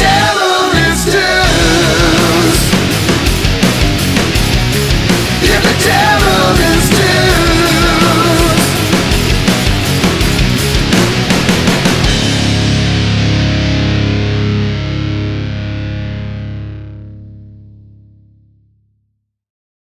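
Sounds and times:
heavy rock band playing: 0.0s - 17.5s
distorted electric guitar chord: 0.0s - 18.6s
bass guitar: 0.0s - 19.1s.

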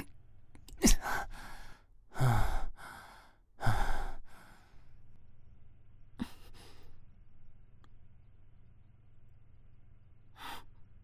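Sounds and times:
man breathing heavily: 0.8s - 5.0s, 6.2s - 7.0s.

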